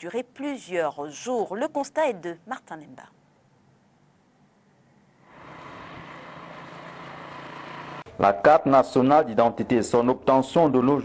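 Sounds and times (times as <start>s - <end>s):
street traffic: 5.2s - 8.2s
vehicle engine running: 5.2s - 8.2s.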